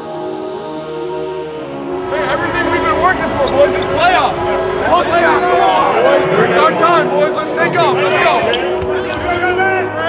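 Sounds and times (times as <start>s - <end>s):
men shouting: 2.0s - 8.7s.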